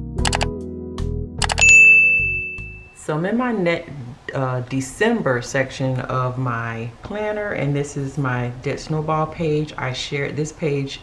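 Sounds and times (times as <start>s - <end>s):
intro music: 0.0s - 3.0s
notification bell ding: 1.4s - 3.0s.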